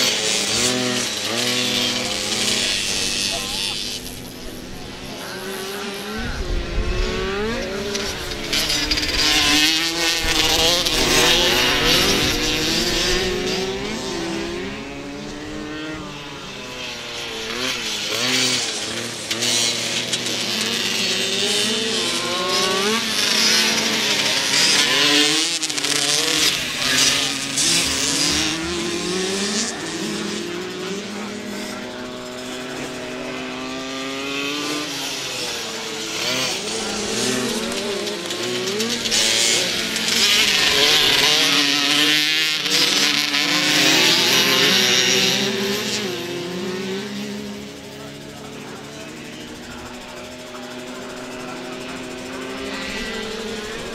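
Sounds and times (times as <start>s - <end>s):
motocross bike engines revving: 0.0s - 53.9s.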